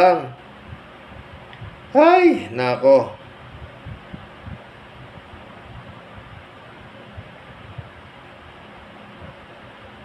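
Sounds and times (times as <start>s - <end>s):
soft low bumps: 3.3s - 6.5s.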